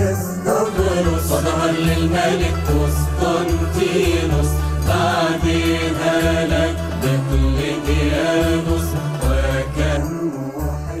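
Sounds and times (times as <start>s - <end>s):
music with deep bass notes: 0.0s - 11.0s
person singing a hymn: 0.0s - 11.0s.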